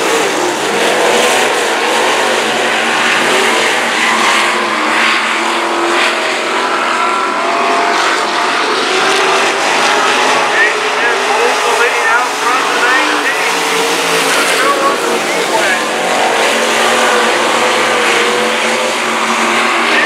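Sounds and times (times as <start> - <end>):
race car engines revving: 0.0 - 20.0.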